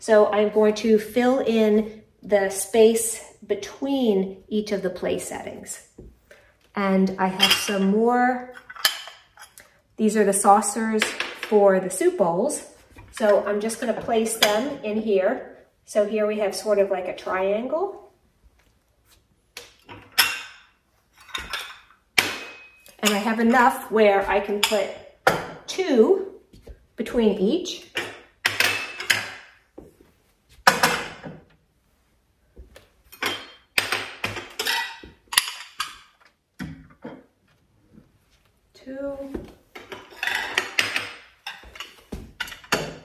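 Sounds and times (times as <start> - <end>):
porcelain saucers clinking: 33.1 - 36.2, 39.8 - 43.0.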